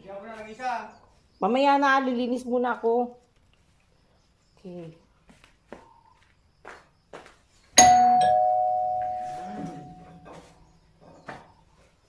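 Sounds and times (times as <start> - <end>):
two-note doorbell chime: 7.8 - 10.3.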